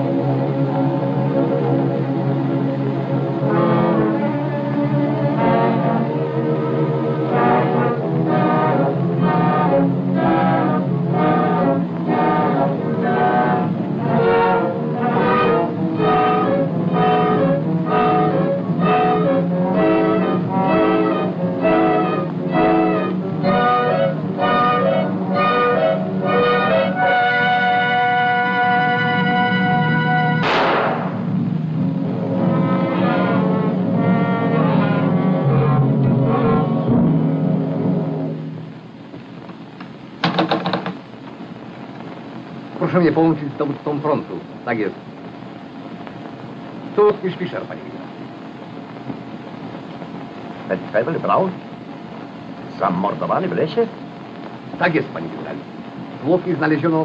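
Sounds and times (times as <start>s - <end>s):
orchestral chords: 0.0s - 38.6s
cymbal crash ringing: 30.4s - 31.4s.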